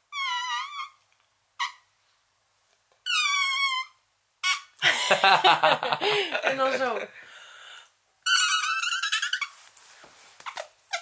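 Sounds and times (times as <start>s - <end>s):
wavering vocal squeaks: 0.1s - 1.0s, 3.0s - 4.7s, 8.2s - 9.6s, 10.4s - 11.0s
loud laughter: 4.8s - 6.6s.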